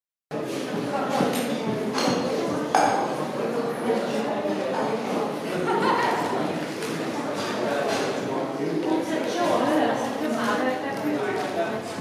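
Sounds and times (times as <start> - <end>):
murmur of people talking: 0.3 - 12.0.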